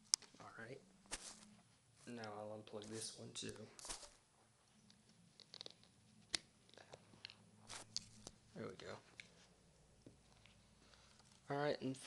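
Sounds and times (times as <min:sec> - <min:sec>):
short rustles: 0:01.1 - 0:02.2, 0:03.7 - 0:04.2.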